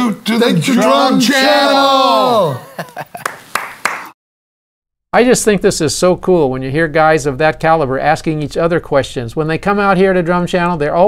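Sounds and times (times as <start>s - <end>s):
person laughing: 2.5s - 3.4s
handclaps: 3.1s - 4.2s.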